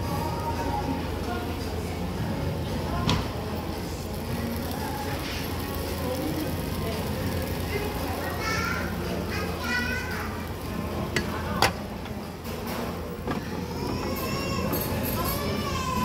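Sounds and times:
chatter: 0:00.0 - 0:16.0
children's voices: 0:07.6 - 0:11.4, 0:13.3 - 0:16.0.

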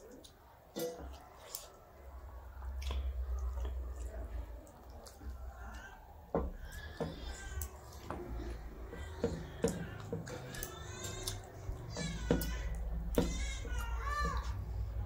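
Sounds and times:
fingers mixing rice on brass plates: 0:00.0 - 0:15.0.

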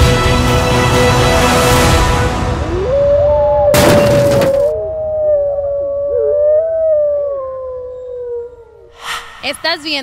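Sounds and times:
howls rising and falling: 0:02.5 - 0:10.0
long steady howl: 0:02.6 - 0:09.4.

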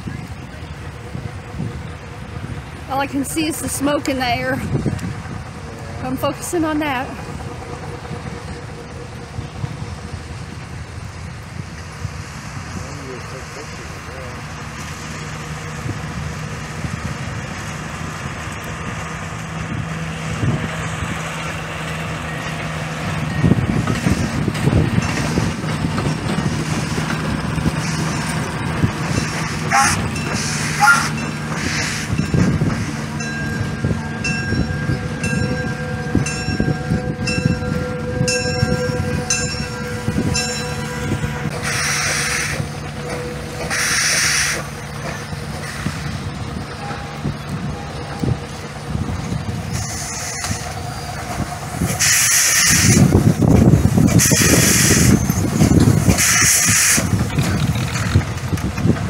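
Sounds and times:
train rumble and hum: 0:00.0 - 0:59.0
steam hiss bursts: 0:29.0 - 0:33.1, 0:41.6 - 0:42.7, 0:43.7 - 0:44.8, 0:49.7 - 0:53.1, 0:54.1 - 0:55.2, 0:56.0 - 0:57.1.

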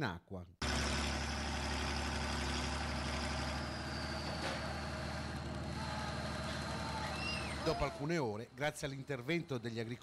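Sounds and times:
tractor diesel engine running: 0:00.6 - 0:10.0.

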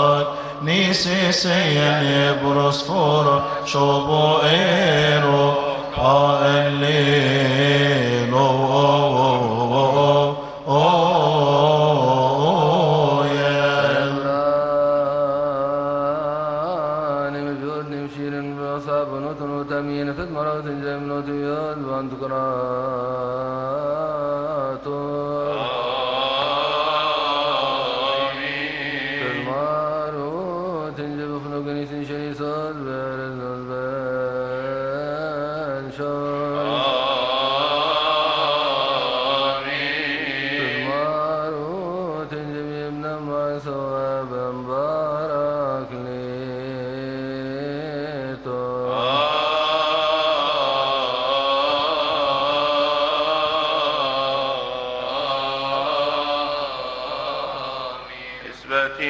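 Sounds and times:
men chanting a hymn: 0:00.0 - 0:15.5, 0:23.3 - 0:31.3, 0:34.6 - 0:59.0.

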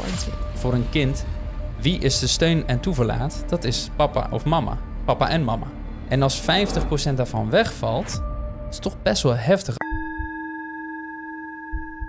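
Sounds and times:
bell-like chime ringing: 0:09.8 - 0:12.0.

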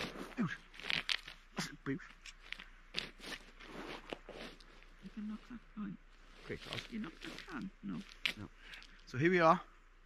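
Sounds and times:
footsteps crunching on gravel: 0:00.0 - 0:05.6, 0:06.2 - 0:08.9
clothing rustling: 0:00.0 - 0:09.0.

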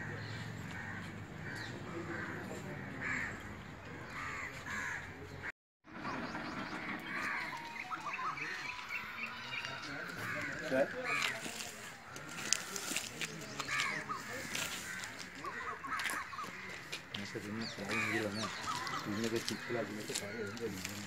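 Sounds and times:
birds calling: 0:00.0 - 0:21.0.

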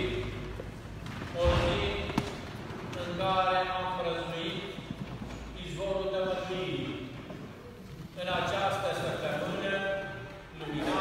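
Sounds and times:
man speaking: 0:00.0 - 0:00.6, 0:03.0 - 0:04.9, 0:05.6 - 0:07.2, 0:08.1 - 0:11.0.

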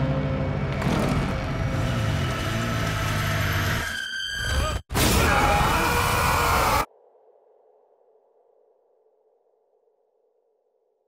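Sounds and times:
dark music drone: 0:00.0 - 0:03.8.

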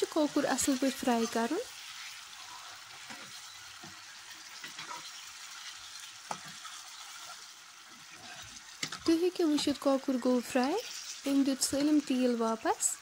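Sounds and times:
chicken sizzling in oil: 0:00.0 - 0:13.0.

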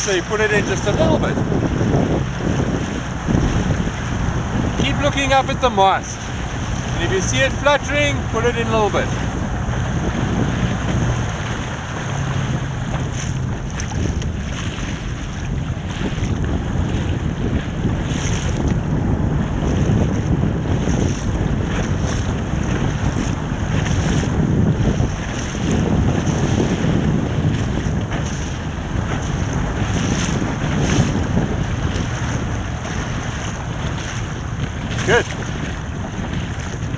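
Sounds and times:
water splashing against boat: 0:00.0 - 0:36.9
wind buffeting microphone: 0:00.0 - 0:36.9.

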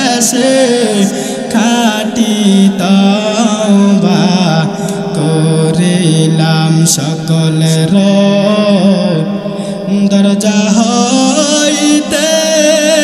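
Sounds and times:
man chanting into a microphone: 0:00.0 - 0:13.0.

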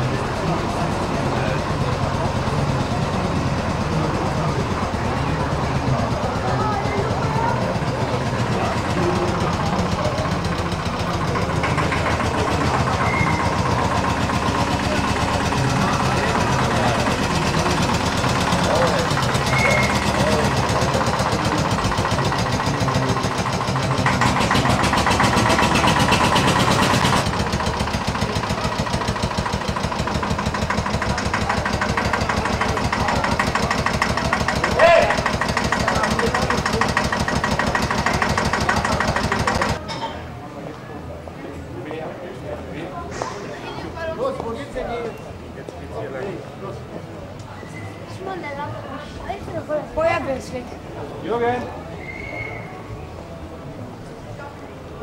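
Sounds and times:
old tractor engine idling: 0:00.0 - 0:39.9
crowd chatter: 0:00.0 - 0:55.0.

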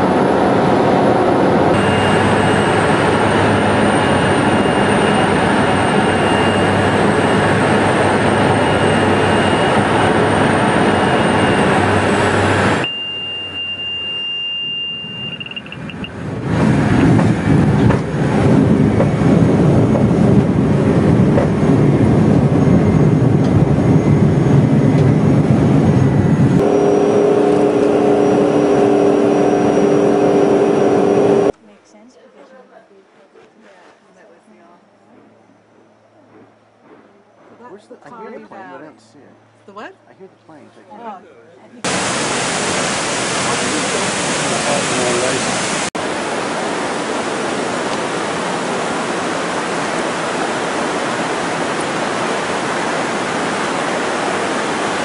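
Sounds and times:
plane rolling on dirt airstrip: 0:00.0 - 0:12.9, 0:15.6 - 0:31.5, 0:41.8 - 0:55.0
propeller plane engine: 0:00.0 - 0:31.6, 0:41.8 - 0:55.0
high steady tone: 0:01.7 - 0:16.2.

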